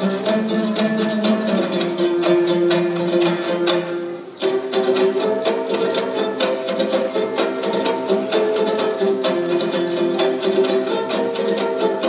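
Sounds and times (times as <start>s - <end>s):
dombras strumming folk tune: 0.0s - 12.0s.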